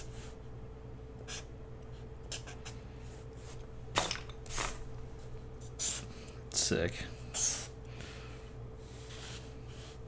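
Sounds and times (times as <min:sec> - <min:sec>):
faint hum: 0:00.0 - 0:10.0
marker strokes on paper: 0:08.4 - 0:10.0.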